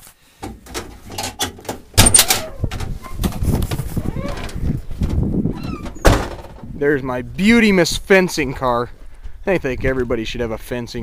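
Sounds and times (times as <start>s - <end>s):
vehicle door opening: 0.4s - 6.7s.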